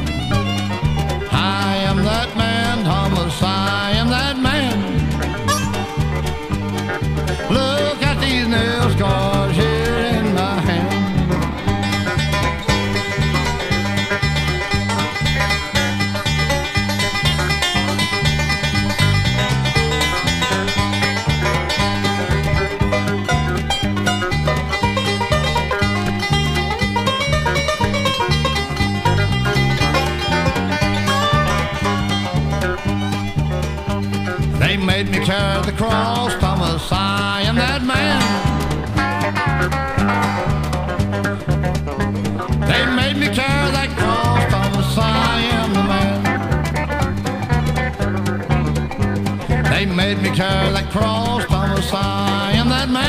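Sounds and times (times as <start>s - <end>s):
bass rhythm: 0.0s - 53.0s
guitar: 0.0s - 53.0s
plucked banjo: 0.0s - 53.0s.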